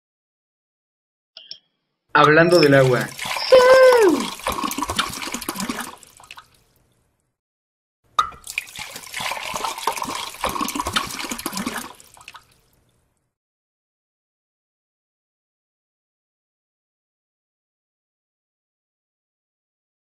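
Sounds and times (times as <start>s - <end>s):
water flowing and splashing: 2.5s - 6.9s, 8.3s - 13.1s.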